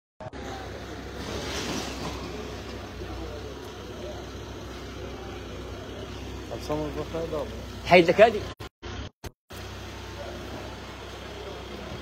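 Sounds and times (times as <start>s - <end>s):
people's voices: 0.2s - 8.6s, 9.9s - 12.0s
van engine idling: 0.2s - 12.0s.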